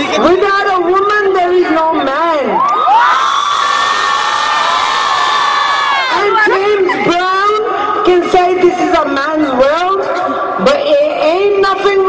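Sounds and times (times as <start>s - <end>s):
concert crowd cheering and screaming: 2.5s - 7.1s.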